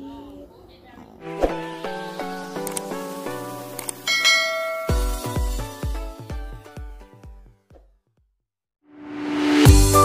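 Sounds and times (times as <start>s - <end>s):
bell-like notification chime: 4.1s - 5.5s
electronic music with kick drum: 4.8s - 7.4s, 9.6s - 10.0s.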